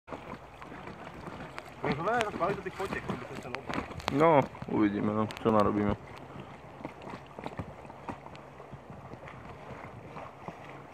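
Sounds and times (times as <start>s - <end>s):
paddles knocking against raft: 0.1s - 10.9s.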